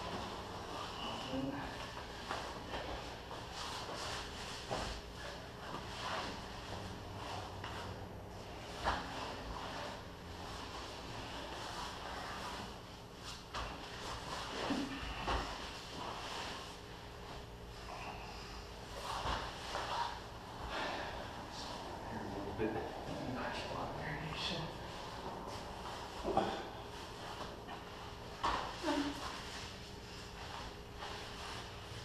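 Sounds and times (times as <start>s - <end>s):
bodies rubbing on a padded mat: 0.0s - 21.9s, 24.5s - 32.0s.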